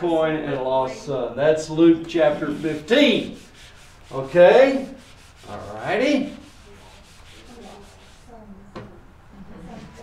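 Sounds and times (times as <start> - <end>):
eraser rubbing on whiteboard: 2.1 - 8.4.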